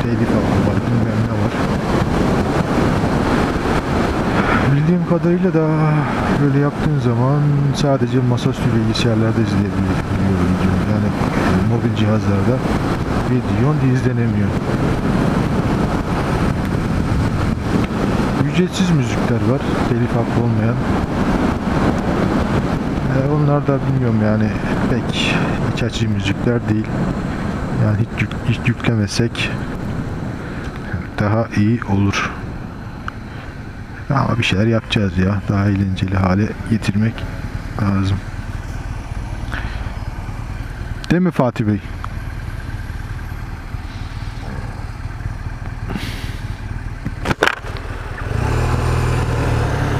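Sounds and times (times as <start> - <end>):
wind rush on microphone: 0.0 - 49.9
motorcycle engine running: 7.3 - 23.3, 35.2 - 49.9
motorcycle engine idling: 35.5 - 48.3.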